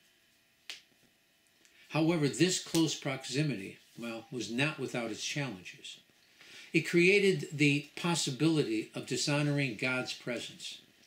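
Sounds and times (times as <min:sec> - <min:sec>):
man reading aloud: 0:01.9 - 0:06.0, 0:06.7 - 0:10.9
sharp click: 0:02.7 - 0:02.9.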